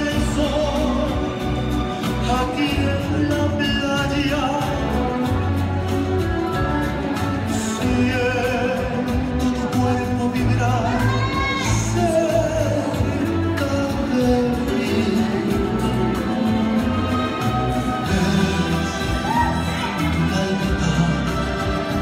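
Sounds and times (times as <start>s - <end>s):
slow bolero music with singer: 0.0s - 22.0s.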